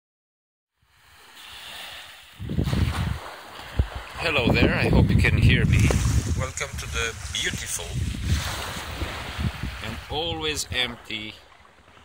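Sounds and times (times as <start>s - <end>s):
surf washing on beach: 0.8s - 12.0s
wind buffeting microphone: 2.3s - 11.0s.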